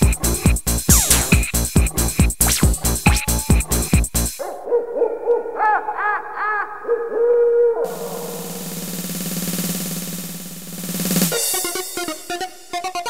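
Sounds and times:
rising and falling synth calls: 0:07.8 - 0:10.6
low drone: 0:07.9 - 0:10.6
held synth tone: 0:07.9 - 0:10.7
noise sweep: 0:07.9 - 0:12.2.

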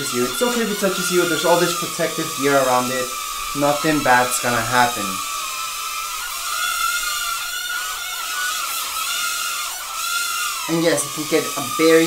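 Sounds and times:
drone propeller motors whining: 0:00.0 - 0:12.0.

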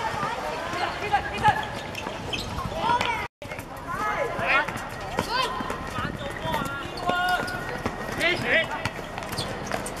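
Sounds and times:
running footsteps: 0:00.0 - 0:10.0
players shouting calls: 0:03.9 - 0:09.0.

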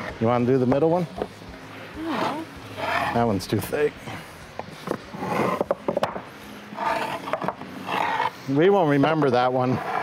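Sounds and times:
stone slabs scraping: 0:04.9 - 0:05.8, 0:06.8 - 0:08.4, 0:09.0 - 0:10.0.

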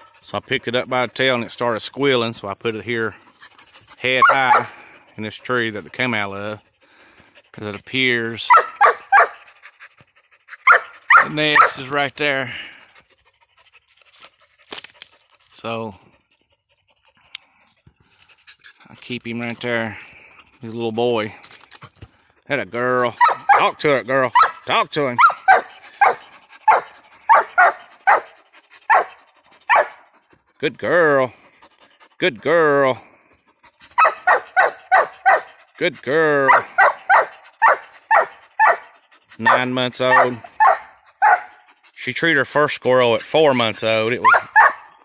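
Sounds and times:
dog panting: 0:03.1 - 0:11.8, 0:12.6 - 0:21.0, 0:23.1 - 0:45.0
dog barking sharply: 0:08.5 - 0:09.4, 0:10.7 - 0:11.7, 0:23.2 - 0:23.7, 0:36.5 - 0:38.8, 0:44.2 - 0:44.9.

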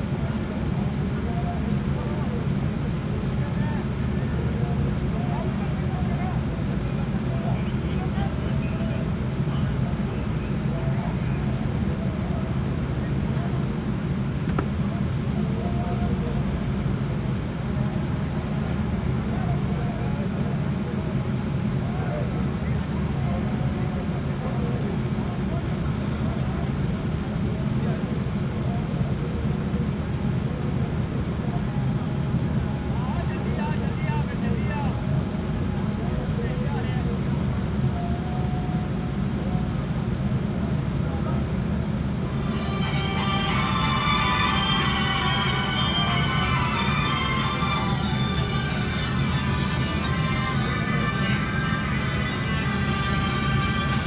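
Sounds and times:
steady low rumble: 0:39.1 - 0:54.0.

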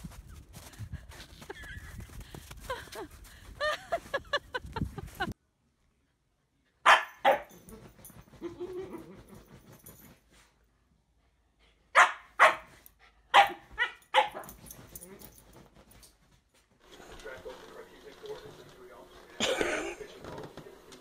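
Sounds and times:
puppy barking: 0:06.8 - 0:07.6, 0:11.9 - 0:12.7, 0:13.3 - 0:14.6.

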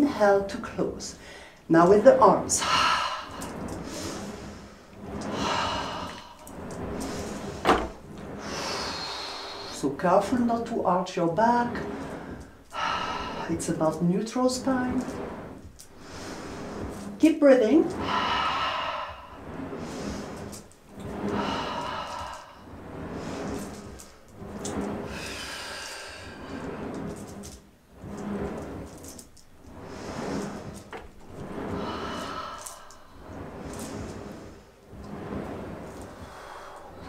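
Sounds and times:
carriage sliding on rails: 0:00.0 - 0:37.0
person breathing: 0:01.2 - 0:01.7, 0:02.6 - 0:07.7, 0:11.9 - 0:13.7, 0:18.0 - 0:24.2, 0:31.6 - 0:34.7, 0:36.0 - 0:37.0.

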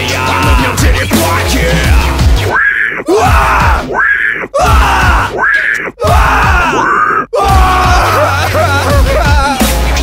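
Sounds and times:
men screaming and yelling: 0:00.0 - 0:10.0.

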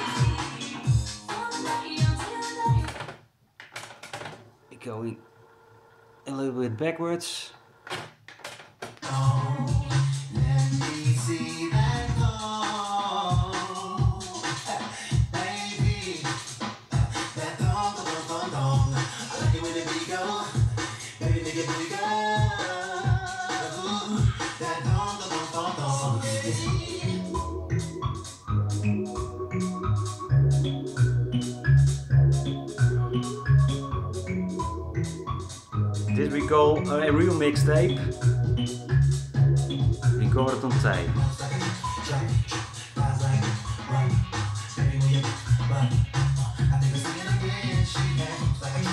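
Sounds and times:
music playing from cassette: 0:00.0 - 0:03.2, 0:08.8 - 0:48.9.

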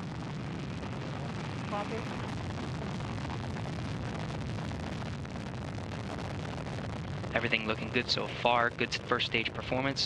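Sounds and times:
deep rocket engine roar: 0:00.0 - 0:10.0.

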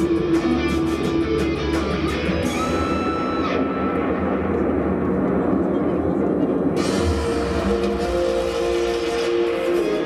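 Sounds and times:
stadium music echoing: 0:00.0 - 0:10.0.

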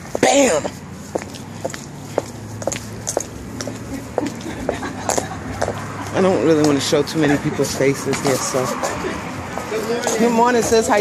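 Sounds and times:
walking footsteps: 0:00.0 - 0:11.0.

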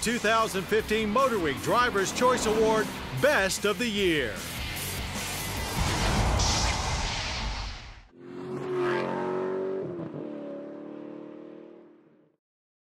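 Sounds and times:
car engine holding steady revs: 0:01.2 - 0:03.2
loud rushing noise: 0:04.8 - 0:08.1.

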